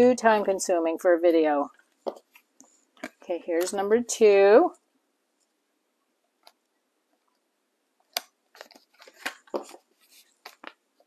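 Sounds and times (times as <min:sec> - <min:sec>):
cards crackling and tapping: 0:08.1 - 0:10.8.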